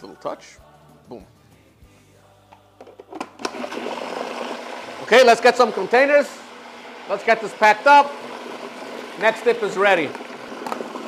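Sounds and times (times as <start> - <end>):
food processor motor running: 3.4 - 11.0.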